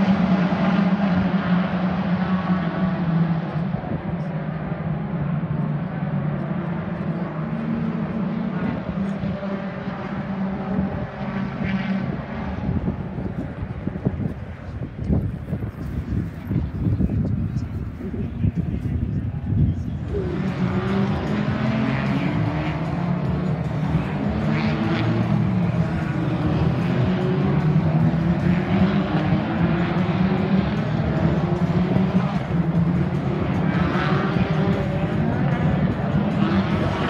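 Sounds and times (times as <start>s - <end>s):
racing cars passing: 0.0s - 37.0s.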